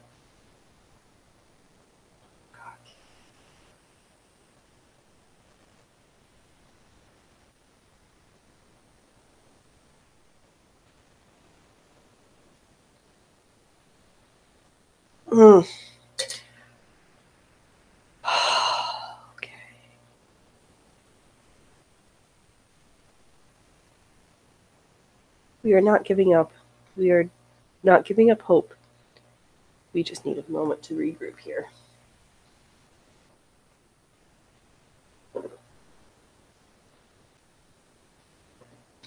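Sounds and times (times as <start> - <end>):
person murmuring: 15.3 - 16.4
heavy sigh: 18.2 - 19.3.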